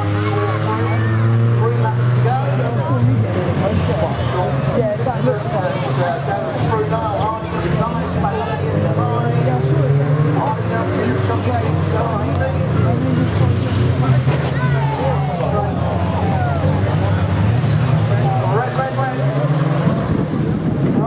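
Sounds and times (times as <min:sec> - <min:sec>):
racing car engines revving: 0:00.0 - 0:21.0.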